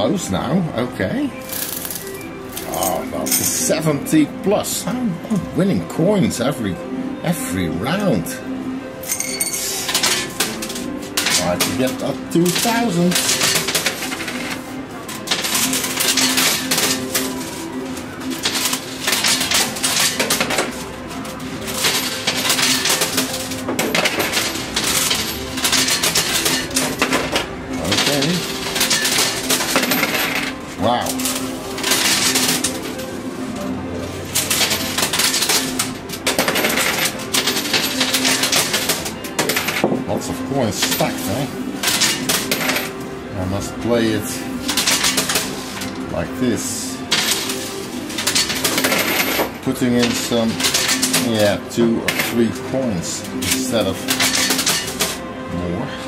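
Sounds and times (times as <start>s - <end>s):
coins clinking and clattering: 1.4s - 4.0s, 9.0s - 55.3s.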